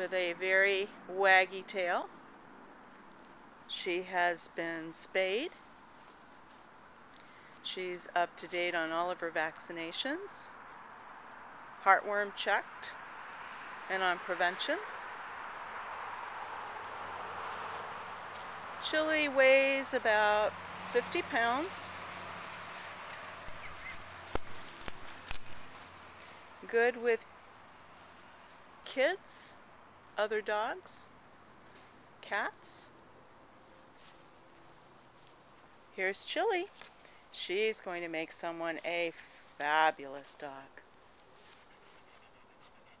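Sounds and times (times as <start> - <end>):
dog collar jingling and clicking: 10.5 - 11.5, 16.6 - 17.3, 18.0 - 18.5, 20.2 - 20.6, 23.2 - 26.4
dog panting: 41.6 - 43.0.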